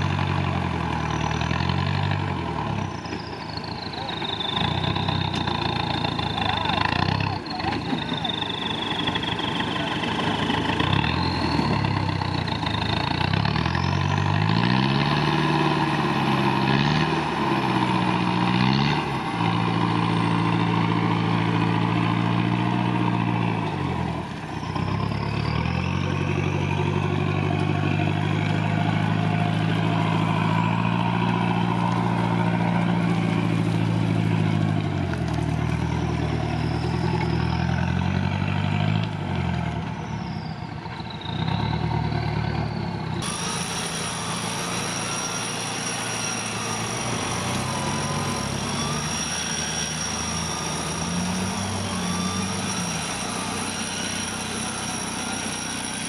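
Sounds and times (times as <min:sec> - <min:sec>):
off-road vehicle engine revving: 0:00.0 - 0:56.0
faint high whistle: 0:02.8 - 0:12.8, 0:35.6 - 0:38.0, 0:39.8 - 0:56.0.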